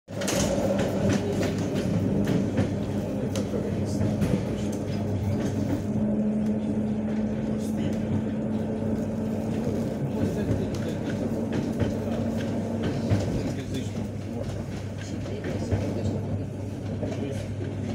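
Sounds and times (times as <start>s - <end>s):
train running rumble and hum: 0.1s - 17.9s.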